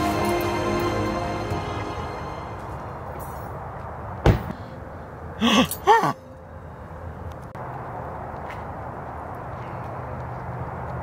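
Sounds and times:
car door slamming shut: 4.2 - 4.6.

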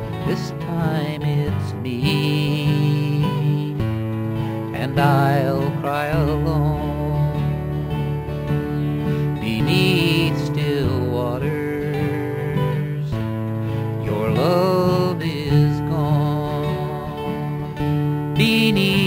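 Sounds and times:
acoustic guitar accompaniment: 0.0 - 19.0
sliding lead melody: 0.0 - 19.0.

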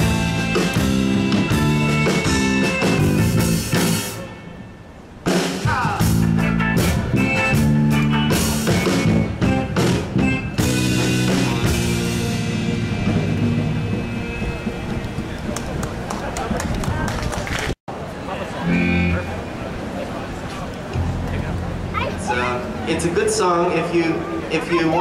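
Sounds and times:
live band playing: 0.0 - 16.2, 18.6 - 19.5.

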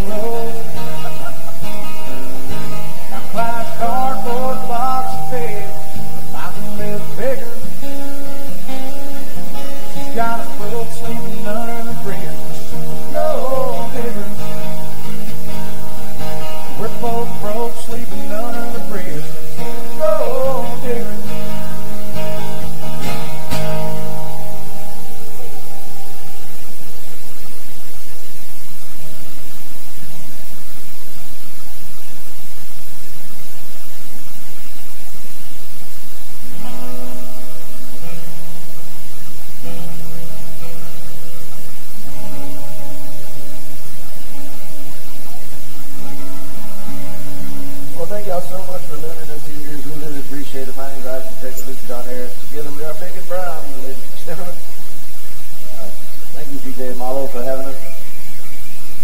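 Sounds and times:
acoustic guitars strummed and picked: 0.0 - 59.0.

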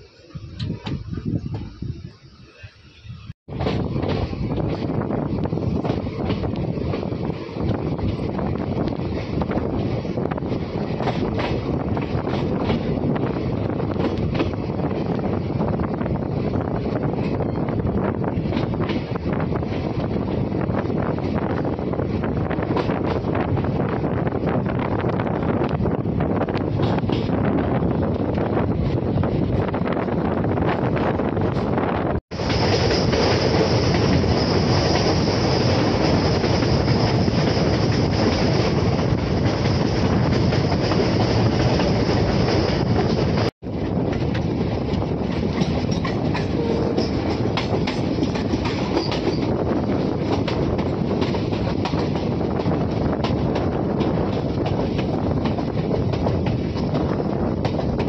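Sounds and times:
train wheels clattering over track joints: 3.5 - 58.0.

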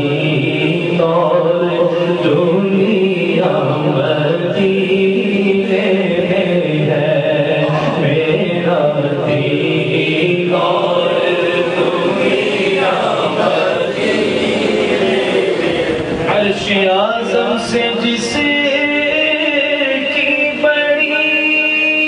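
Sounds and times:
chant-like singing: 0.0 - 22.0.

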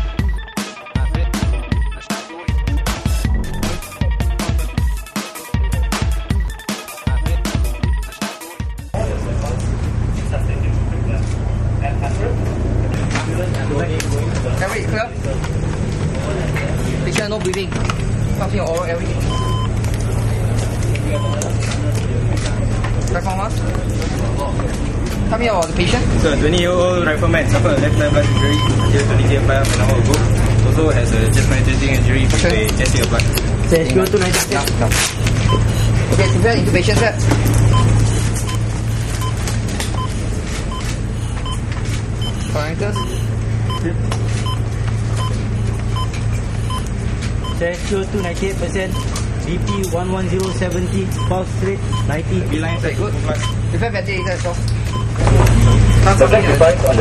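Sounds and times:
low mechanical hum: 8.9 - 57.0
monitor beep: 19.2 - 19.8, 21.1 - 21.5, 27.6 - 29.2, 35.4 - 36.7, 37.7 - 47.6, 48.2 - 57.0.

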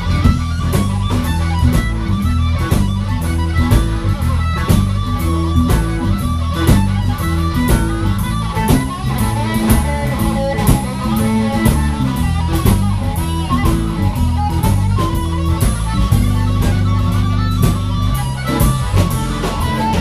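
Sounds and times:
electric guitar: 0.0 - 20.0
harmonica: 0.0 - 20.0
steady drum beat: 0.0 - 20.0.

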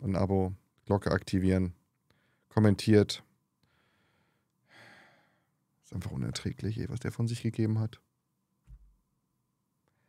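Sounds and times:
man's soft breath: 3.6 - 5.6.

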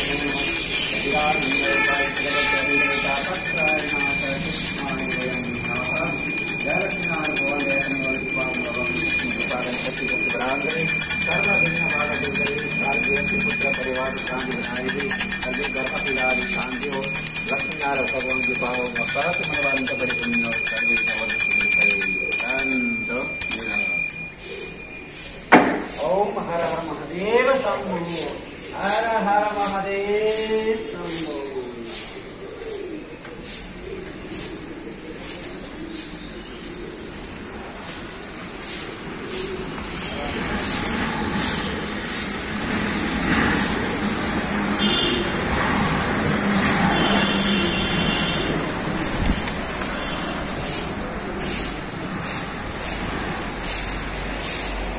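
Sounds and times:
small hand bell ringing: 0.0 - 25.6
sharp thump: 25.5 - 25.9
passing road traffic: 37.3 - 54.9.

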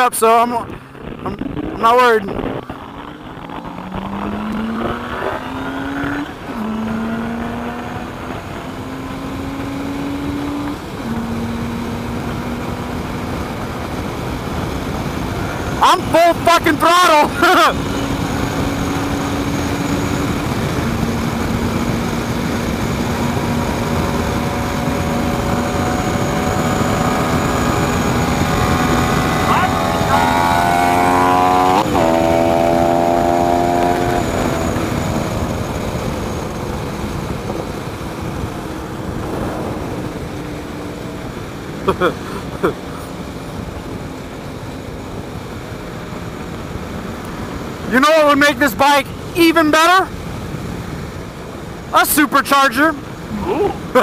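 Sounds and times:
heavy wind rush: 0.0 - 52.0
motorcycle engine accelerating: 0.7 - 16.1, 16.7 - 47.9.

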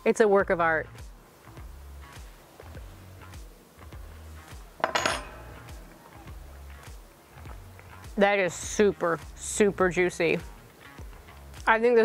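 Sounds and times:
background music with bass: 0.0 - 12.0.

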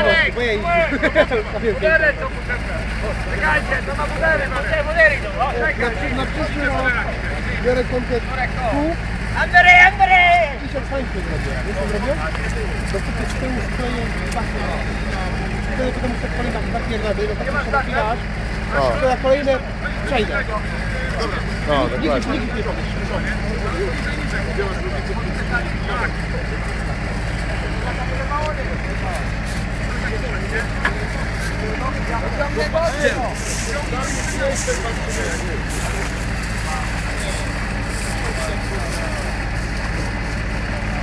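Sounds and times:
engine humming steadily: 0.0 - 41.0.

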